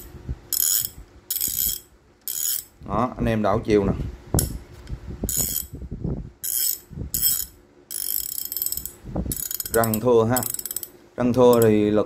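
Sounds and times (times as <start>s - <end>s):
ratchet handle clicking: 0.5s - 2.7s, 5.3s - 5.7s, 6.4s - 11.8s.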